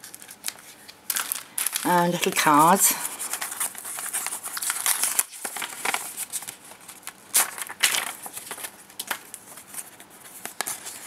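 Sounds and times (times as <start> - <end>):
paper cards rustling: 0.0 - 11.0.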